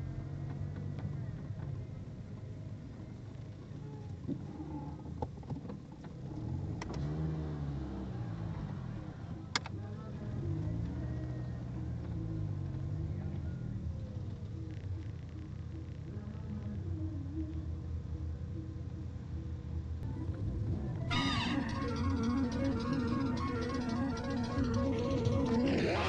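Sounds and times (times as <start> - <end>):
car engine revving: 6.0 - 15.9, 20.1 - 26.0.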